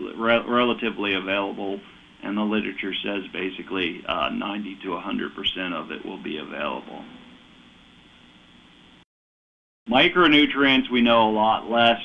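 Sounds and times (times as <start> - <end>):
faint audio feed hiss: 0.0 - 9.0, 9.9 - 12.0
faint hum: 0.0 - 9.0, 9.9 - 12.0.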